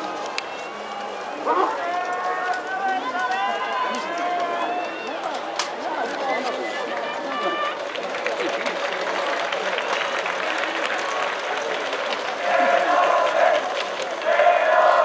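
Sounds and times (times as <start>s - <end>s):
people shouting and calling: 0.0s - 7.9s, 12.4s - 15.0s.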